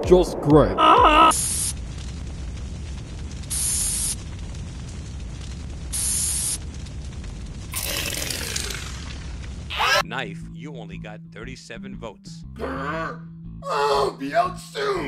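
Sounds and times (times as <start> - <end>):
low rumble: 0.0 - 9.7
spray-can hiss: 1.4 - 1.8, 3.5 - 4.2, 5.9 - 6.6.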